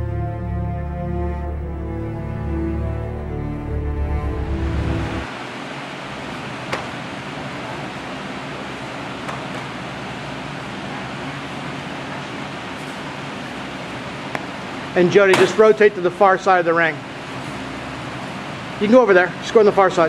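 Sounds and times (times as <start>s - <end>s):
room noise hiss: 0.0s - 20.0s.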